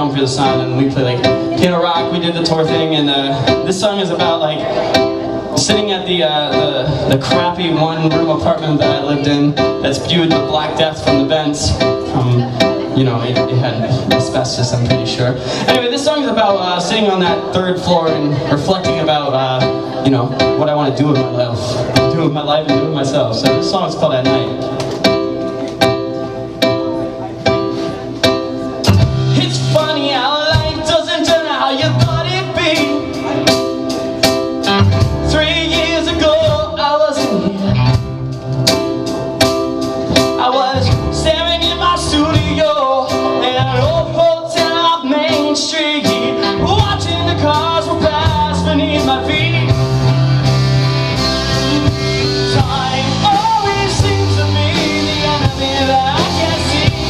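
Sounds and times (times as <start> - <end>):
man singing lead vocal: 0.0 - 24.6, 29.1 - 38.0, 40.1 - 50.1, 51.7 - 57.0
bass guitar: 0.0 - 57.0
live rock band playing: 0.0 - 57.0.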